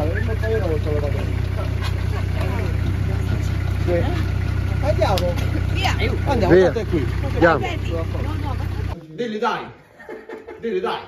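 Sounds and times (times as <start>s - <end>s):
engine idling: 0.0s - 9.0s.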